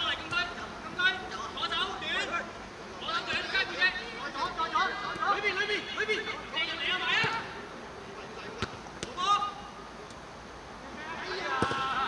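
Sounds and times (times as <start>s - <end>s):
player shouting: 11.0s - 12.0s.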